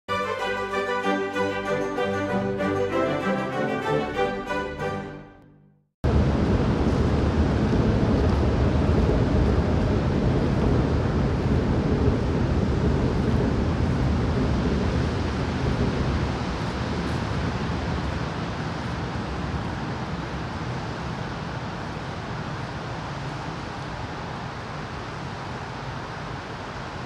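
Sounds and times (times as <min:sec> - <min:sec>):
wind: 0:06.0 - 0:27.0
steady rain: 0:06.1 - 0:27.0.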